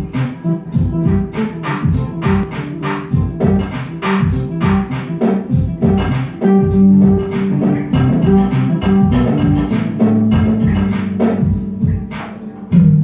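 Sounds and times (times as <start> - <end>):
live band playing: 0.0 - 13.0.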